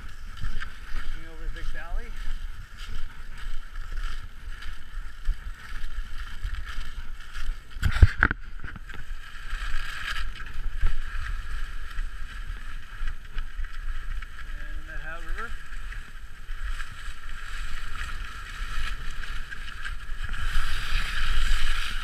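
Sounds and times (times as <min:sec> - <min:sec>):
skis scraping over snow: 0:00.0 - 0:22.0
wind rumbling on microphone: 0:00.0 - 0:22.0.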